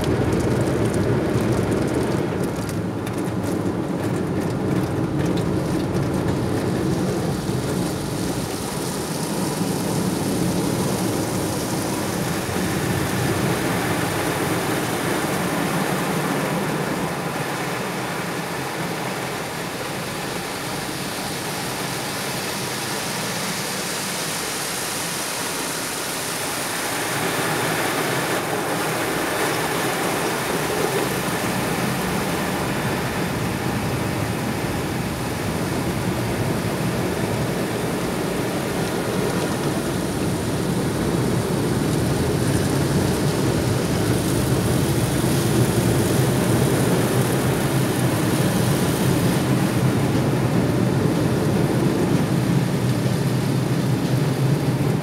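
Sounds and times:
car wash water spray and brushes: 0:00.0 - 0:55.0.

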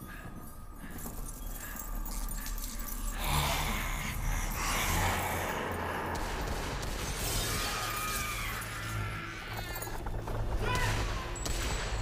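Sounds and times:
glass pieces tinkling: 0:00.8 - 0:04.0.

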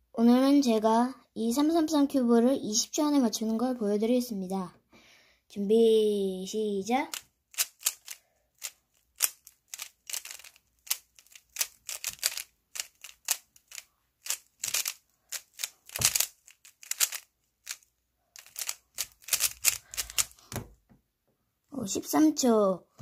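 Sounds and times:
puzzle cube plastic clicks: 0:07.1 - 0:20.7.

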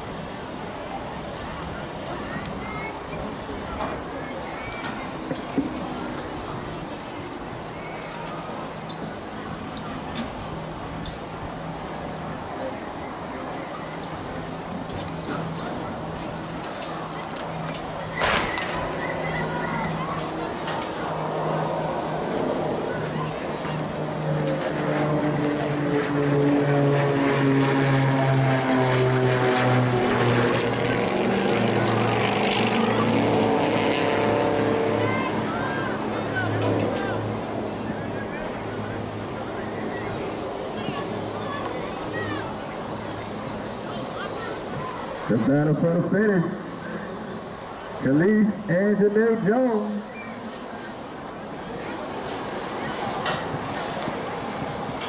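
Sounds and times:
background chatter: 0:00.0 - 0:55.0.

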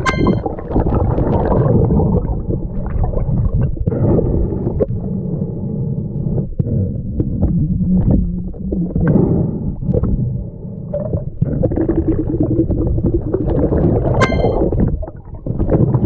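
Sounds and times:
underwater low rumble: 0:00.0 - 0:16.0.

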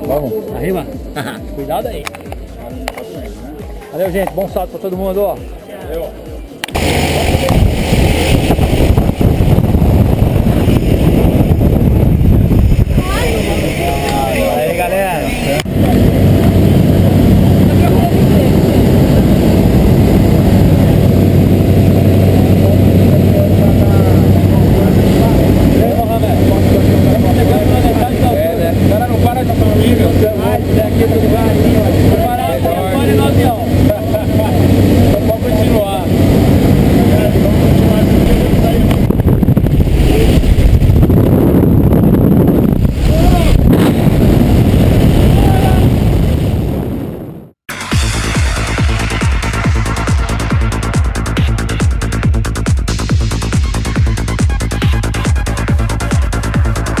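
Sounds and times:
light aircraft engine drone: 0:15.2 - 0:39.0.

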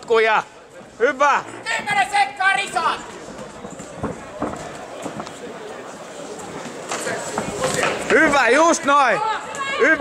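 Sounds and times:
murmur of sports hall: 0:00.0 - 0:10.0.

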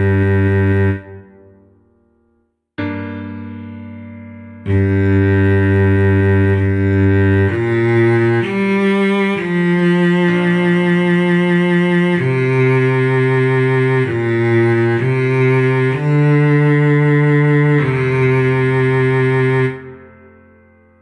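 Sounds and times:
cello playing slow melody: 0:00.0 - 0:01.6, 0:04.6 - 0:20.5.

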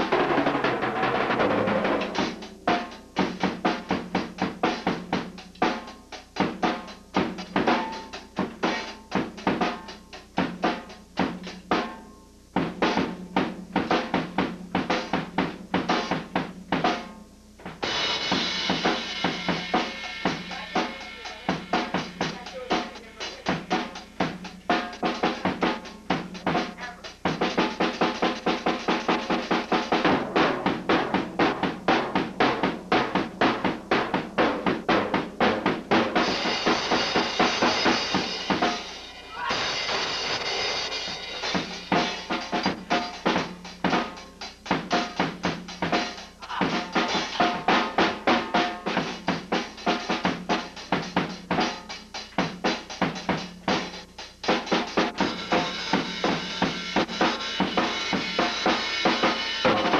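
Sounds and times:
drum kit fast beat: 0:00.0 - 0:59.9
cymbals washing: 0:36.0 - 0:59.9.

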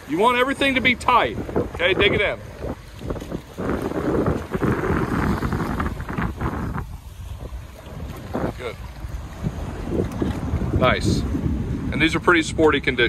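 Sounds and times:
water splashing around boat: 0:00.0 - 0:13.0
wind rumbling on microphone: 0:00.0 - 0:13.0.

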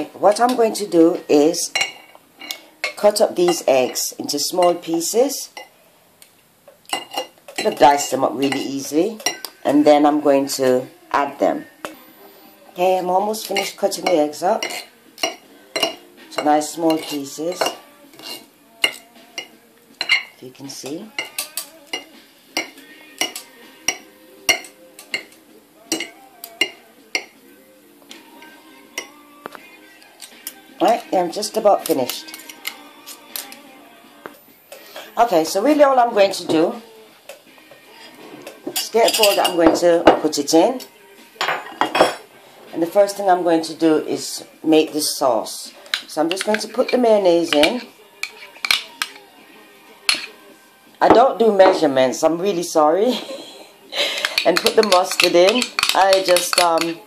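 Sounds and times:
fork clinking on ceramic dish: 0:06.9 - 0:09.5, 0:13.5 - 0:20.4, 0:21.1 - 0:27.4, 0:32.1 - 0:33.6, 0:38.7 - 0:40.2, 0:45.9 - 0:49.2, 0:50.0 - 0:50.4, 0:54.2 - 0:57.0.

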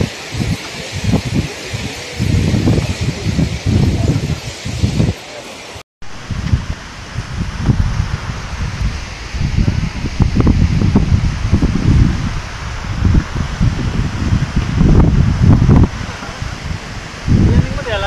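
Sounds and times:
wind buffeting microphone: 0:00.0 - 0:05.2, 0:06.0 - 0:18.0
mountain stream rushing: 0:00.0 - 0:18.0.

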